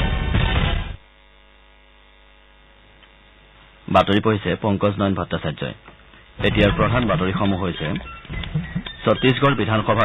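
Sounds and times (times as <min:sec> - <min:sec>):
low mains hum: 0:00.0 - 0:10.0
newsreader speaking: 0:03.9 - 0:10.0.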